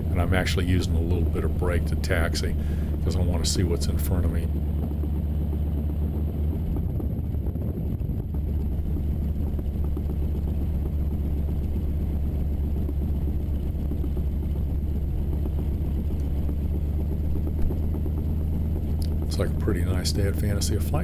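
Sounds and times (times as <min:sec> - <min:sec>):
radial aircraft engine running: 0:00.0 - 0:21.0.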